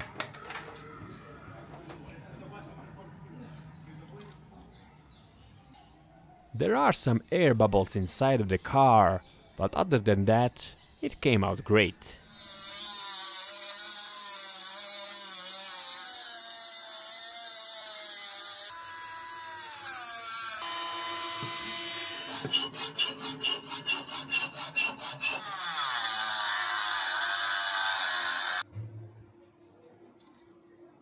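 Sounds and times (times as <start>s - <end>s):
rotary tool grinding metal: 12.2s - 28.6s.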